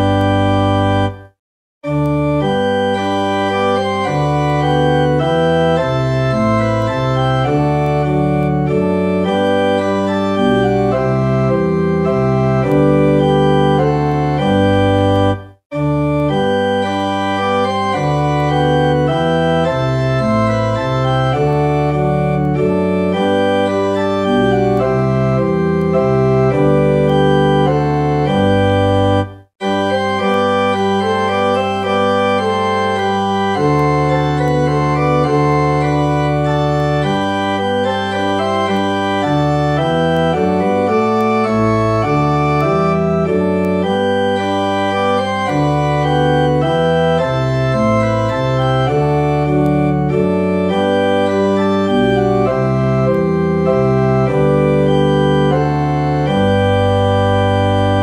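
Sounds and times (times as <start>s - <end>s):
church organ playing slow chords: 0.0s - 1.2s, 1.8s - 58.0s.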